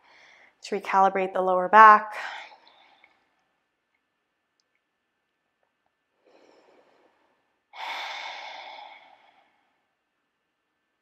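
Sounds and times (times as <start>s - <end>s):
person breathing deeply: 6.2s - 9.9s.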